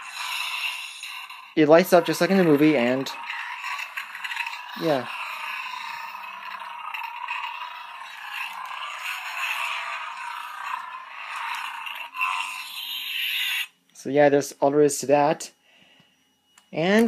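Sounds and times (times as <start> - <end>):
tinny toy lightsaber hum: 0.0 - 15.5.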